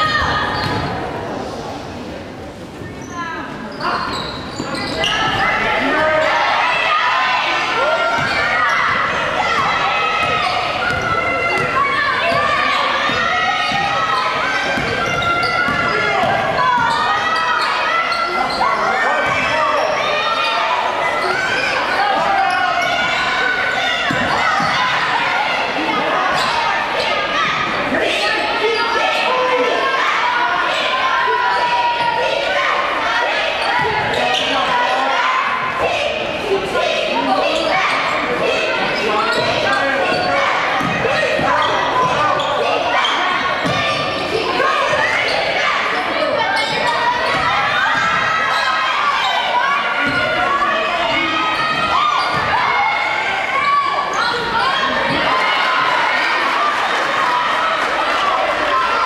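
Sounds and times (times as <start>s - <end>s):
players and spectators talking: 0.0s - 59.0s.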